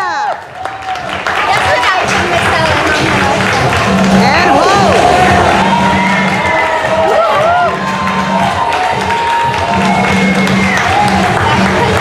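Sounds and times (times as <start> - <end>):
runway music: 0.4 - 12.0
audience cheering and whooping: 4.3 - 12.0.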